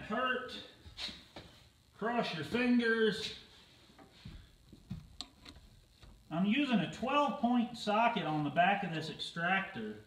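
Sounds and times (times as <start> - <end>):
faint metal clicks and knocks: 4.9 - 6.2.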